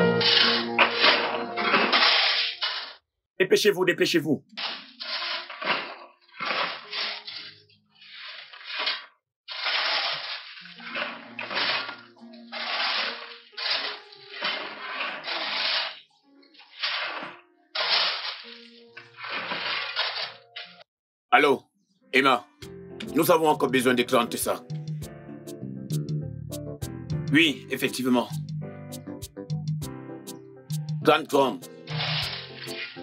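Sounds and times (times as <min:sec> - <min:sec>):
shovels scraping gravel: 0:00.0 - 0:03.0, 0:04.6 - 0:20.8, 0:31.3 - 0:33.0.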